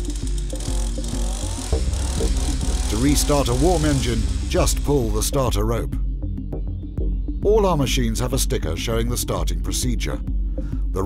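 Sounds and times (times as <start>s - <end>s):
trimmer engine idling: 0.0s - 5.5s
background music with steady beat: 0.0s - 11.0s.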